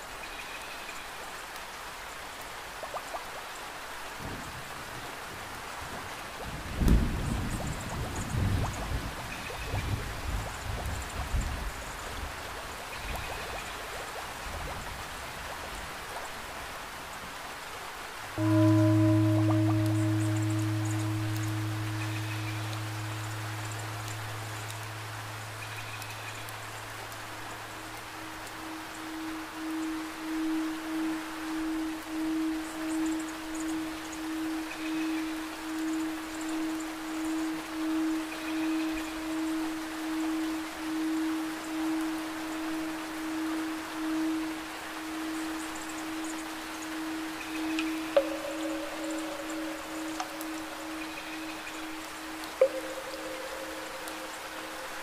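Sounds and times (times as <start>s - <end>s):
rushing water: 0.0s - 55.0s
deep ringing tone: 18.4s - 26.5s, 28.1s - 44.6s, 46.9s - 55.0s
higher wavering tone: 18.4s - 55.0s.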